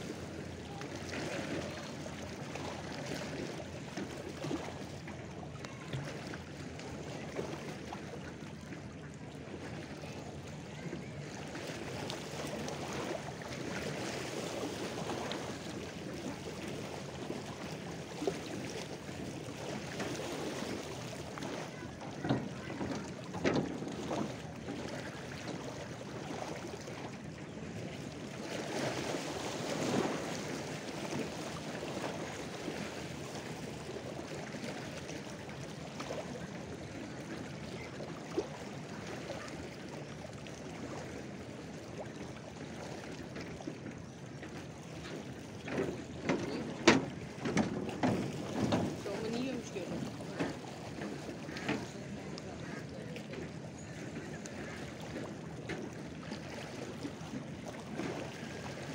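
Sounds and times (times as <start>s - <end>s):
lake waves lapping on shore: 0.0s - 58.9s
water splashes: 0.0s - 58.9s.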